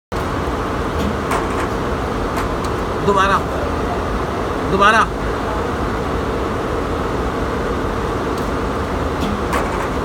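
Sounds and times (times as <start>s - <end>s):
embroidery machines running: 0.1s - 10.0s.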